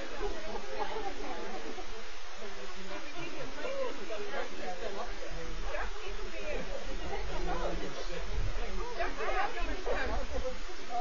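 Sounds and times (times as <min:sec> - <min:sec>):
people's voices: 0:00.0 - 0:11.0
steady hiss: 0:00.0 - 0:11.0.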